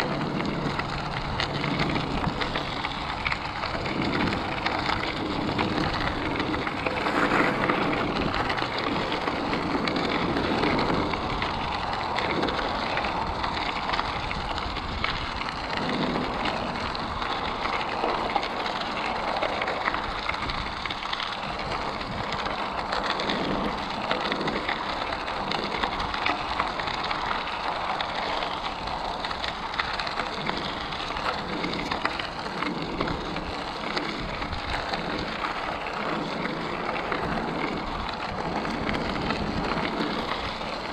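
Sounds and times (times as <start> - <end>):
bicycle tyres rolling on gravel: 0.0 - 40.9
wind rumble on microphone: 0.0 - 40.9.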